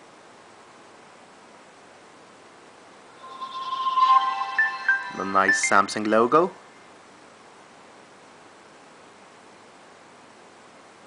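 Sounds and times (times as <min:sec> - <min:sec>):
phone startup jingle: 0:03.2 - 0:06.3.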